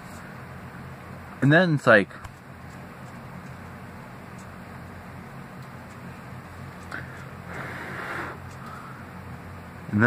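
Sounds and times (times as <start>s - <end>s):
low hum and hiss: 0.0s - 10.0s.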